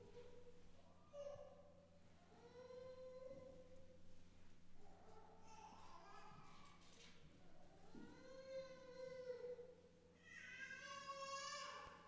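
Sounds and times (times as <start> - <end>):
faint high-pitched voice: 4.8 - 7.0.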